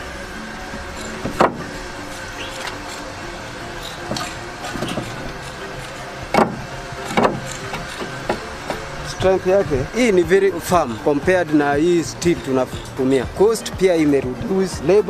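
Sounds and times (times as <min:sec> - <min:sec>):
background music: 0:00.0 - 0:15.0
steady hum: 0:00.0 - 0:15.0
sharp knocks: 0:01.2 - 0:01.7, 0:06.3 - 0:08.8.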